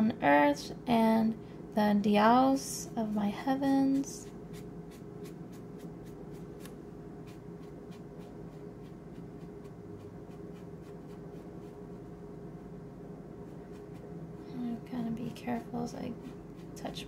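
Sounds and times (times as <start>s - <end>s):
steady low hum: 0.0s - 17.0s
paintbrush clicking and scratching: 3.9s - 11.8s, 13.5s - 14.2s, 16.1s - 17.0s.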